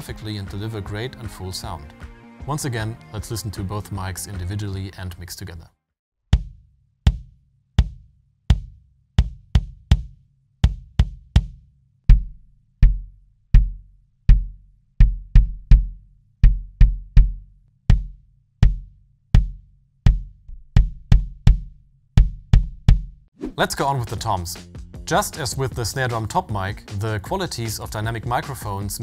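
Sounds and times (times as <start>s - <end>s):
kick drum beats: 6.3s - 29.0s.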